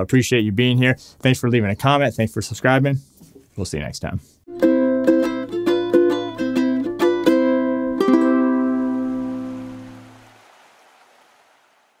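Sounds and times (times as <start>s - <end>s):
ukulele chord ringing: 4.5s - 10.2s.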